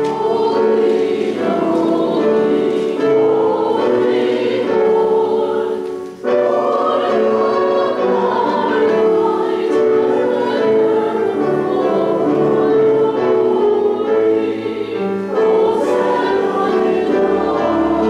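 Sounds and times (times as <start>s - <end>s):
congregation singing a hymn: 0.0s - 18.0s.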